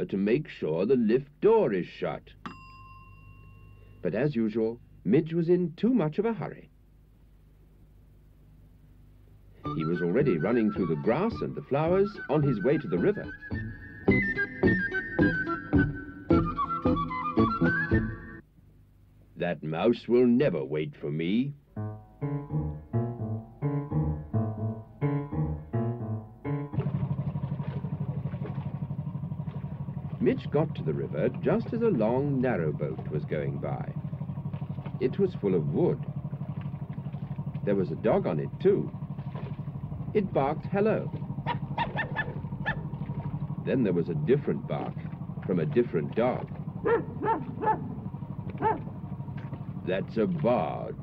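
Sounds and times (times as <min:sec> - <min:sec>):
steady low hum: 0:00.0 - 0:17.2, 0:18.0 - 0:51.0
boat engine chugging: 0:09.6 - 0:18.4, 0:21.2 - 0:51.0
piano-like tune: 0:21.7 - 0:29.0
dog barking: 0:41.4 - 0:42.9, 0:46.8 - 0:48.0, 0:48.6 - 0:48.9.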